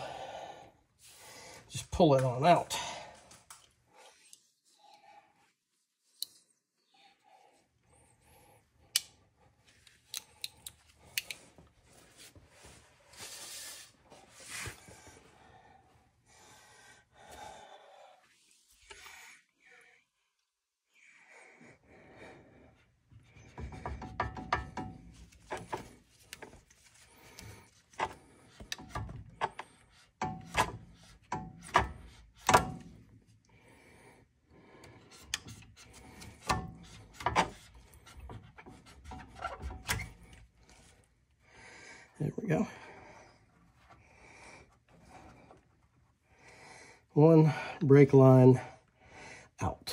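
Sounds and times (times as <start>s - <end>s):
metal clicks and knocks: 23.5s - 25.9s, 30.2s - 32.9s.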